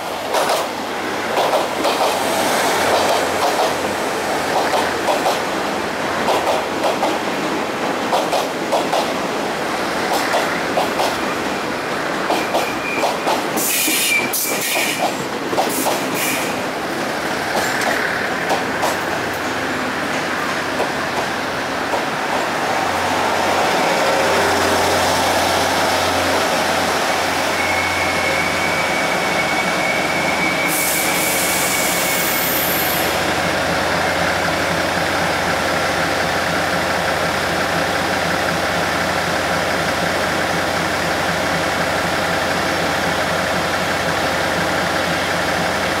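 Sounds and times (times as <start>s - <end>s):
train brake squeal: 12.4s - 15.1s, 27.4s - 33.2s.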